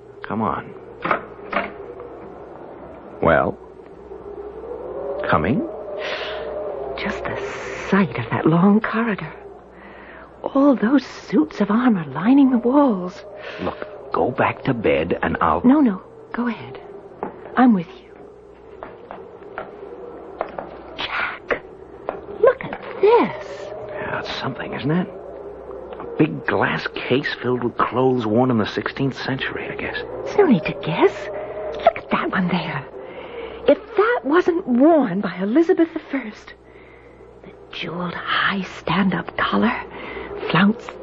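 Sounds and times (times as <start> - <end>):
low hum: 0.0 - 41.0.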